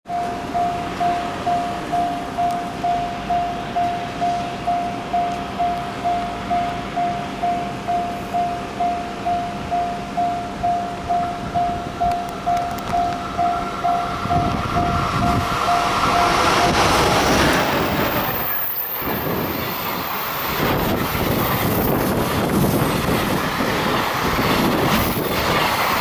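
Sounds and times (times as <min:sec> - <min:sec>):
level crossing warning bell: 0:00.1 - 0:22.0.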